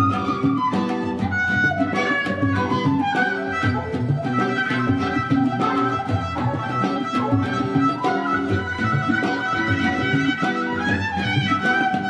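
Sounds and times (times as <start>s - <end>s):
electric guitar: 0.0s - 12.0s
electric violin melody: 0.0s - 12.0s
tabla strokes: 0.0s - 12.0s.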